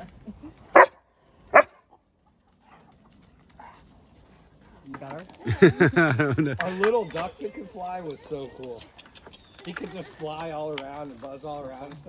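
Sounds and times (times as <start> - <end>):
dog barking: 0.7 - 1.8.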